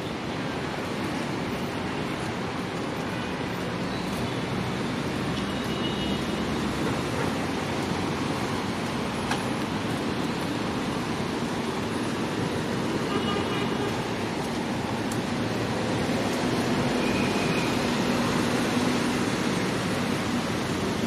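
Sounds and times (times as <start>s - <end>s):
traffic: 0.0s - 21.0s.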